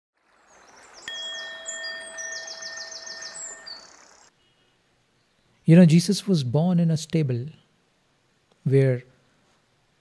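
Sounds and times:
high bird chirps and twitters: 0.4s - 4.3s
bell-like chime ringing: 1.1s - 4.0s.

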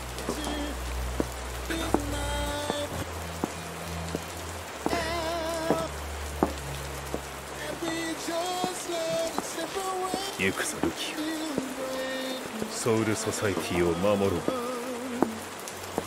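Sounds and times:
sharp drips: 0.0s - 16.0s
slow sad soundtrack music: 0.0s - 16.0s
steady rain: 0.0s - 16.0s.

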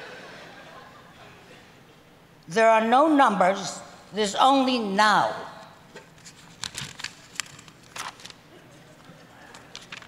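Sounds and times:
paper pages being handled: 5.9s - 10.0s.

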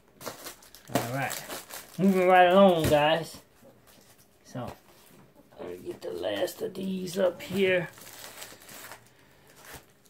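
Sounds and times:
plastic cases rustling: 0.2s - 10.0s.

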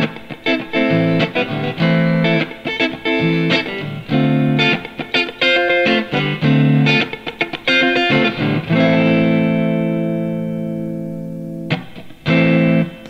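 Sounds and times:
electric guitar chords: 0.0s - 13.0s.

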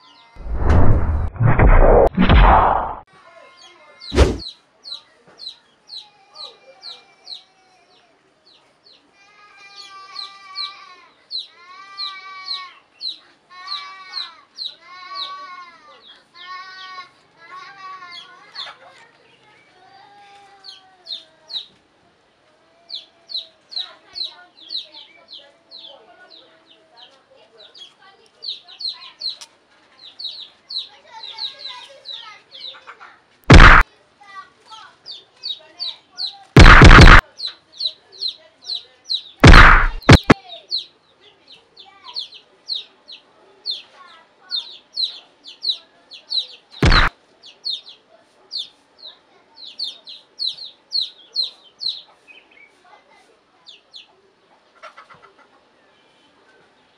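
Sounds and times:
rush of noise: 0.4s - 3.0s, 4.2s - 4.4s, 33.5s - 33.8s, 36.6s - 37.2s, 39.4s - 40.4s, 46.8s - 47.1s
chickens chirping: 53.7s - 55.8s
chickens clucking: 54.6s - 55.8s.

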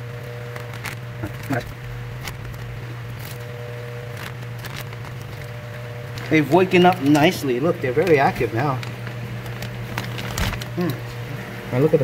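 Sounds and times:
steady low hum: 0.0s - 12.0s
plastic bag crinkling: 0.4s - 11.1s.

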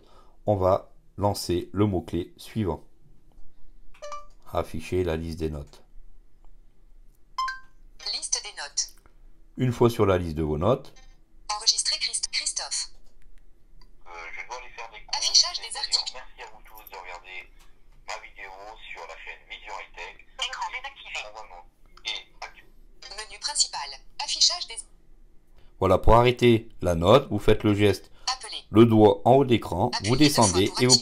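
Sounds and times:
thin recorded speech from small speaker: 8.0s - 9.0s, 10.6s - 13.0s, 14.0s - 24.9s, 27.9s - 31.0s.

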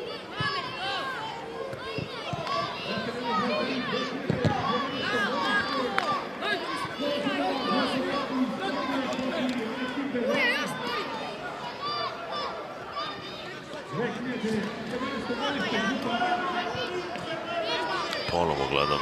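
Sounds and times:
children shouting: 0.0s - 9.4s, 10.3s - 13.8s.

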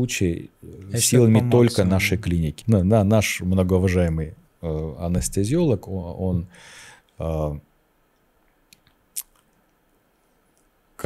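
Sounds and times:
mouth clicks and lip smacks: 8.2s - 9.8s.

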